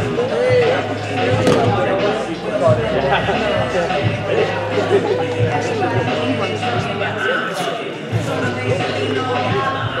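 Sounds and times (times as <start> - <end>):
sharp slap: 1.4 - 1.8.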